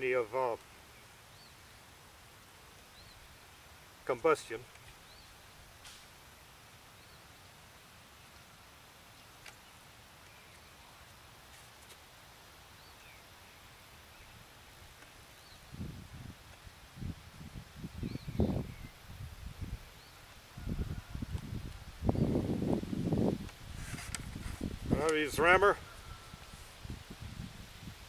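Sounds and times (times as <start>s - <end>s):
faint bird chirps: 25.8s - 26.5s.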